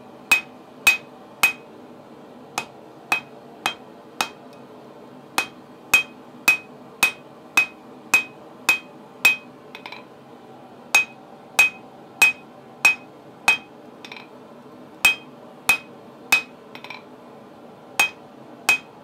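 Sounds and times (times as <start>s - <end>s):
hammer striking steel on anvil: 0.3s - 1.6s, 2.6s - 4.4s, 5.4s - 10.1s, 11.0s - 14.3s, 15.0s - 17.0s, 18.0s - 19.0s.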